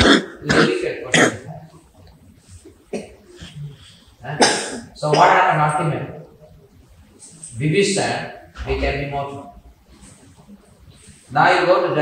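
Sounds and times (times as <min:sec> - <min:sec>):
person coughing: 0:00.0 - 0:01.6, 0:02.9 - 0:03.3, 0:04.4 - 0:05.4.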